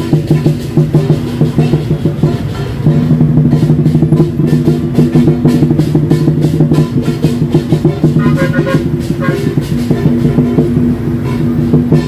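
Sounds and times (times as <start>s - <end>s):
drum and cymbals beating rapidly: 0.0s - 12.0s
motorbike engines running: 0.0s - 12.0s.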